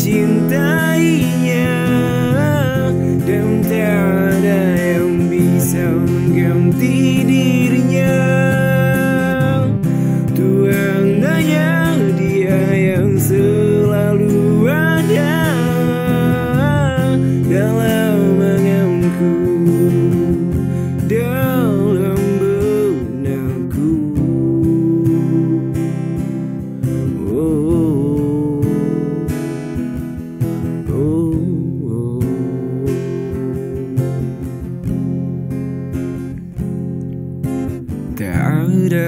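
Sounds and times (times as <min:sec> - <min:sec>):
acoustic guitar strummed and picked: 0:00.0 - 0:39.0.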